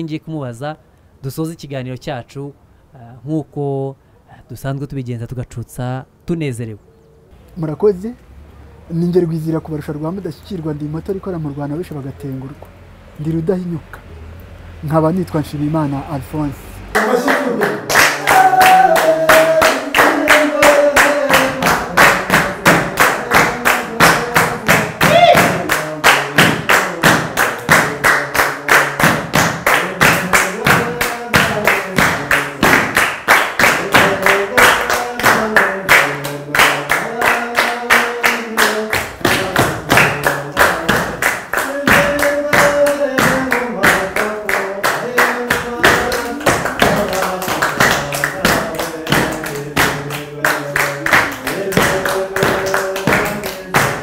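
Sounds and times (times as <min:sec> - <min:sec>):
voices singing chanted melody: 0:16.8 - 0:32.8, 0:33.6 - 0:54.0
hands clapping steady beat: 0:16.9 - 0:54.0.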